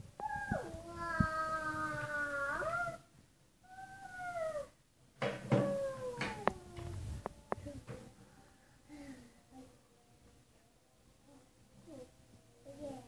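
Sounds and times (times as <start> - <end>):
toddler sing-song vocalizing: 0.2 - 3.1.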